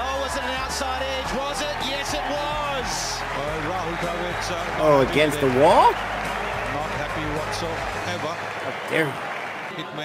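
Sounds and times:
commentator's voice: 4.8s - 6.0s, 8.7s - 9.3s
man exclaiming: 4.9s - 6.0s, 8.7s - 9.2s.

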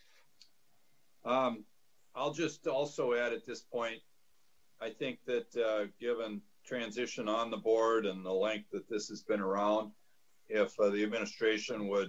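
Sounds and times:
faint click: 0.2s - 0.6s
man's voice over video call: 1.3s - 4.0s, 4.8s - 12.0s.

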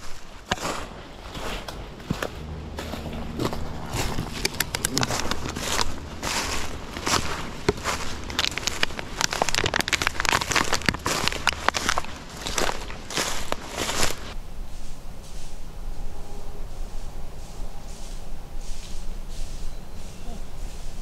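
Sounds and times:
footsteps crunching through leaves: 0.0s - 21.0s
faint low hum: 0.8s - 21.0s.

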